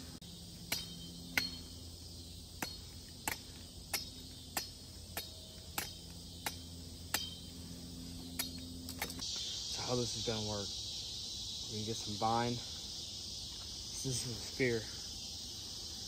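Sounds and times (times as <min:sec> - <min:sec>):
insects chirring: 0:00.0 - 0:16.0
machete chopping wood: 0:00.7 - 0:01.6, 0:02.6 - 0:07.4.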